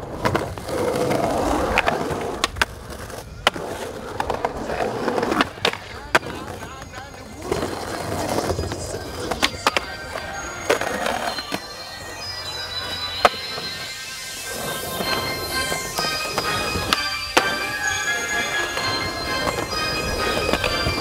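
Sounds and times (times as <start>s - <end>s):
skateboard clacking: 0.0s - 21.0s
skateboard trucks grinding ledges: 0.0s - 21.0s
skateboard wheels rolling on concrete: 0.0s - 21.0s.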